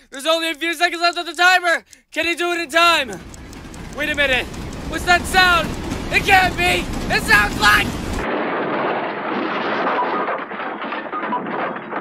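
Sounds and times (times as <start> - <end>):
train rushing past: 3.1 - 8.3.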